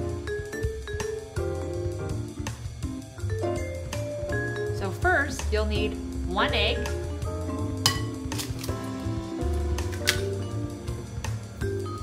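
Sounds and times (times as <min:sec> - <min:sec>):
soft mallet percussion music: 0:00.0 - 0:02.0, 0:03.0 - 0:08.4.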